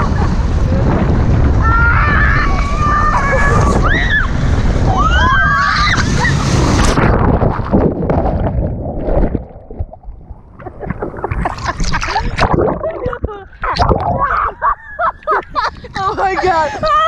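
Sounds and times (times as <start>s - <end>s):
water rushing and splashing: 0.0s - 14.8s
people shrieking: 1.6s - 6.7s.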